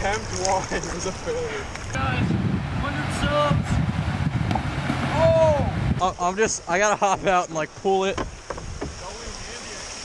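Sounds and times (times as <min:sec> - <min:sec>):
wind buffeting microphone: 0:01.9 - 0:06.0.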